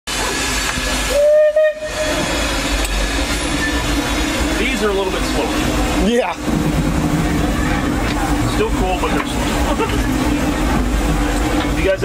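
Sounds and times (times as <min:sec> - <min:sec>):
steam locomotive hiss and rumble: 0:00.1 - 0:12.0
steam whistle blast: 0:01.0 - 0:02.5.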